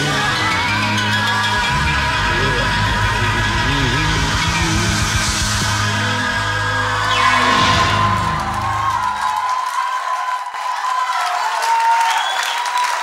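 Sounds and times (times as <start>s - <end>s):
audience applauding and cheering: 0.0s - 13.0s.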